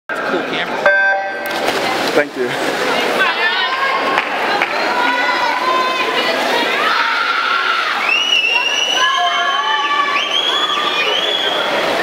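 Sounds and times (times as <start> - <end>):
voices in pool hall: 0.1 - 12.0.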